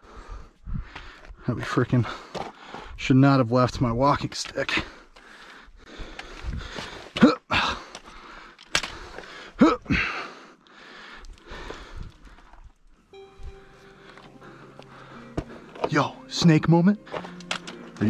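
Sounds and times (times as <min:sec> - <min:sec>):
man grunting and breathing hard: 0:04.8 - 0:12.1.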